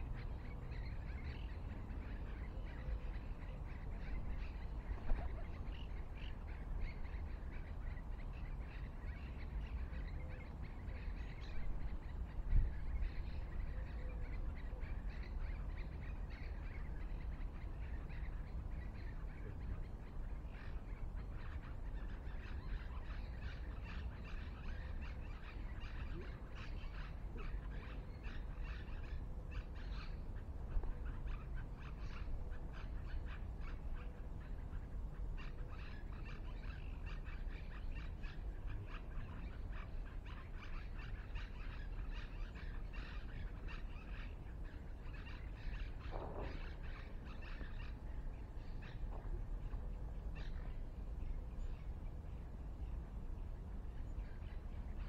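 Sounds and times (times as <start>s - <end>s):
birds chirping: 0.0s - 55.0s.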